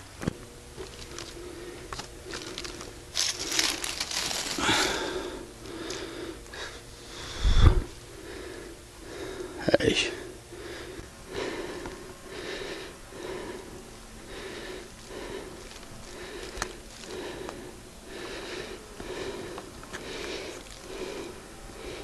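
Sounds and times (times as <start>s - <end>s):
man breathing hard: 1.0s - 22.0s.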